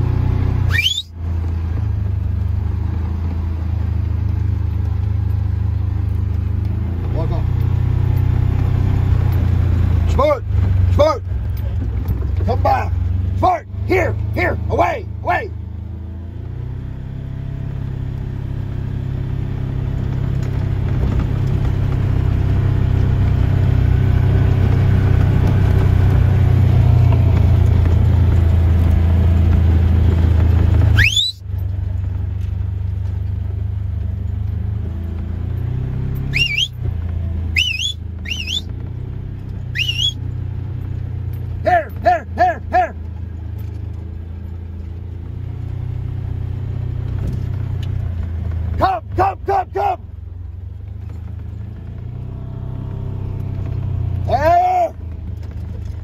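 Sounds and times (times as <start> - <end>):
utility vehicle engine running: 0.0 - 56.0
short calls: 0.6 - 1.1, 30.9 - 31.4, 36.3 - 36.8, 37.5 - 38.7, 39.7 - 40.2
sharp rising whistles: 0.6 - 1.2, 30.9 - 31.4, 36.2 - 36.8, 37.5 - 38.7, 39.7 - 40.2.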